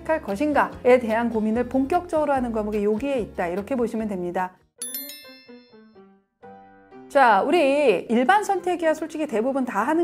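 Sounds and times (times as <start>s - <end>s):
bright bell-like chime: 4.8s - 6.0s
short ringing notes: 4.8s - 6.0s.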